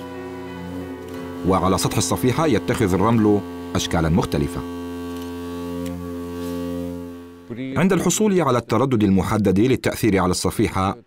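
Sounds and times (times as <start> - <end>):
steady low tone: 0.0 - 8.2.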